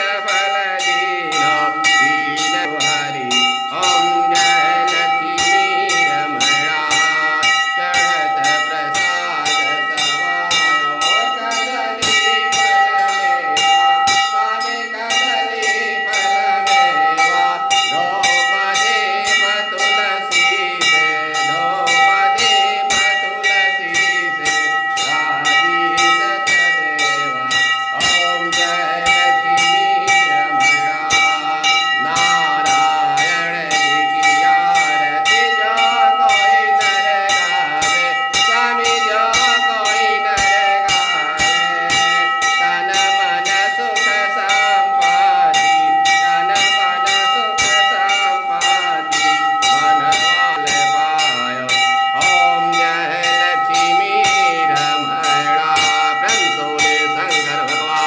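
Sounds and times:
hand bell ringing: 0:00.0 - 0:58.0
man singing: 0:00.0 - 0:58.0.

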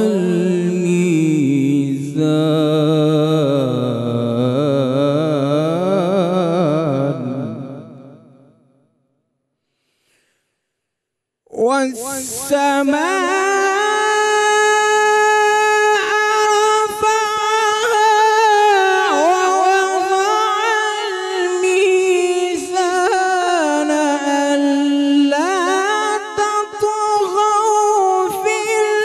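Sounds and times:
man chanting melodically: 0:00.0 - 0:08.2, 0:11.5 - 0:29.0
quick breath: 0:09.6 - 0:11.0.

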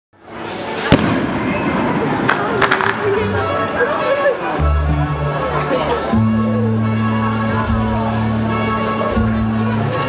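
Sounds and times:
voices: 0:00.3 - 0:10.0
firework bang: 0:00.8 - 0:03.1.

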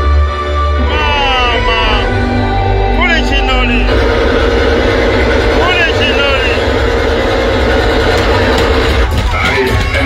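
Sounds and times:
deep bass drone: 0:00.0 - 0:10.0
warbling vocal phrase: 0:00.8 - 0:02.2
loud distorted live music: 0:00.8 - 0:10.0.

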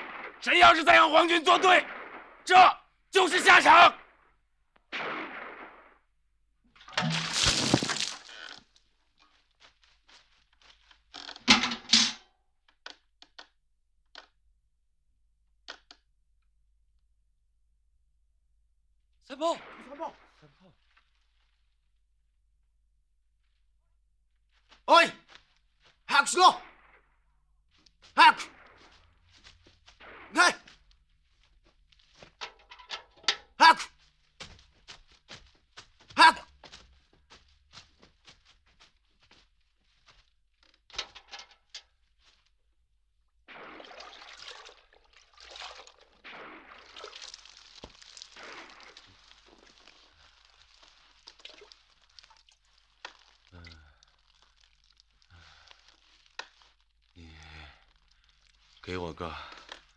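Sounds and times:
man shouting: 0:00.4 - 0:01.8, 0:02.5 - 0:04.0, 0:24.9 - 0:25.2, 0:26.1 - 0:26.6, 0:28.2 - 0:28.5, 0:30.4 - 0:30.6, 0:33.6 - 0:34.0, 0:36.1 - 0:36.5.

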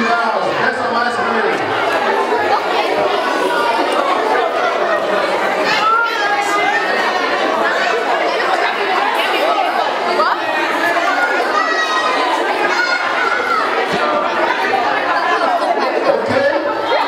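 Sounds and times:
crowd chattering: 0:00.0 - 0:17.0.

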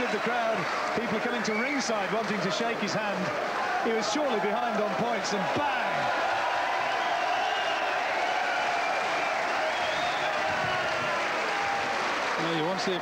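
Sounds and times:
crowd cheering and applauding: 0:00.0 - 0:13.0.

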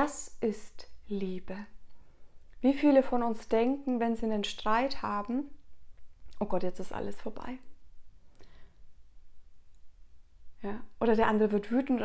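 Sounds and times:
woman speaking: 0:00.0 - 0:01.8, 0:02.6 - 0:05.6, 0:06.4 - 0:07.7, 0:10.6 - 0:12.0.

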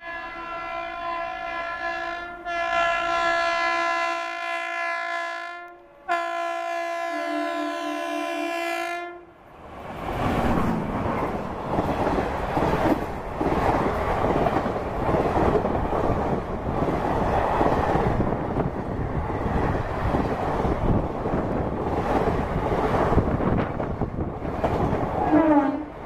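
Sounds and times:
train horn blasts: 0:00.0 - 0:09.3, 0:25.2 - 0:26.0
train coaches rushing past: 0:09.4 - 0:26.0.

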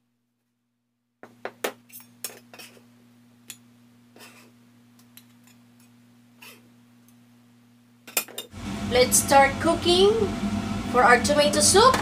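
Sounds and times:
knife scraping: 0:01.9 - 0:02.9, 0:04.2 - 0:04.6, 0:05.4 - 0:06.7.

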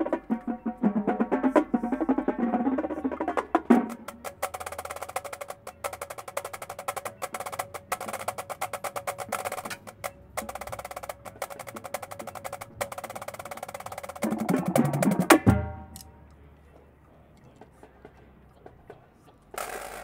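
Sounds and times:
marching snare drums: 0:00.0 - 0:16.0.

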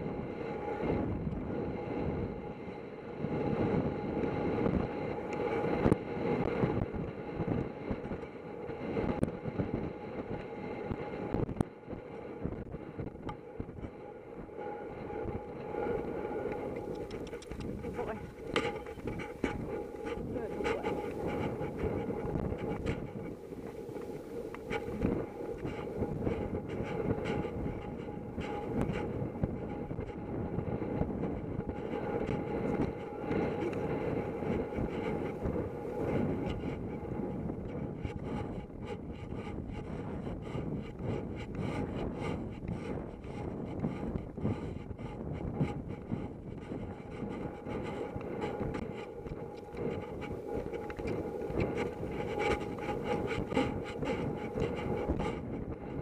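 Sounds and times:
wind noise: 0:00.0 - 0:56.0.

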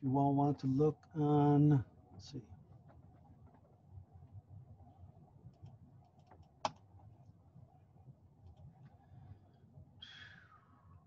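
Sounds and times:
typing on computer keyboard: 0:05.5 - 0:06.8.

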